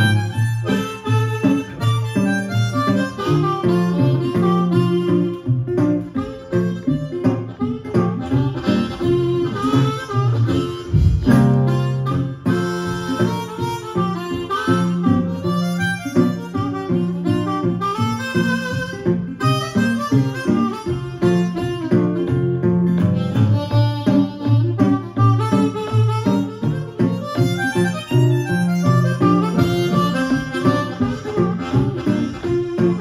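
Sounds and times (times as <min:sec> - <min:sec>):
blues harmonica solo: 0:00.0 - 0:33.0
resonator guitar: 0:00.0 - 0:33.0.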